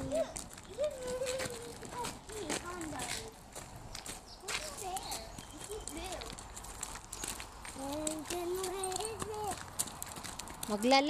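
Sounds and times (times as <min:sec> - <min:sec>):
voices: 0:00.0 - 0:03.6, 0:04.2 - 0:09.8, 0:10.6 - 0:11.0
footsteps crunching on gravel: 0:00.0 - 0:11.0.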